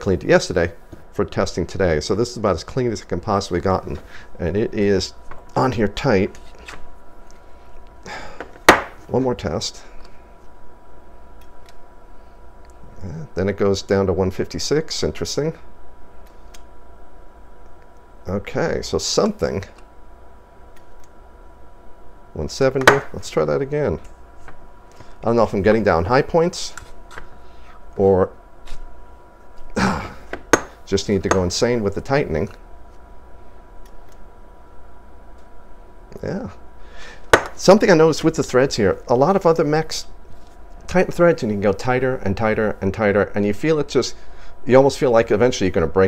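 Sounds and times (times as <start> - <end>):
sharp knock: 8.7 - 9.0.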